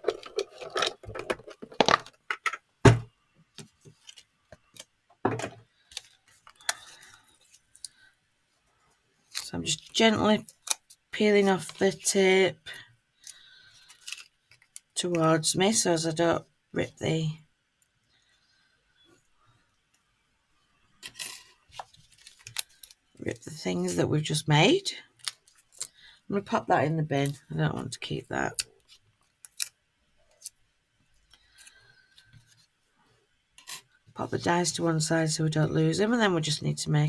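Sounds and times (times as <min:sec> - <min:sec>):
faint paper handling: 0:21.6 - 0:23.0
card rustling: 0:21.7 - 0:23.0.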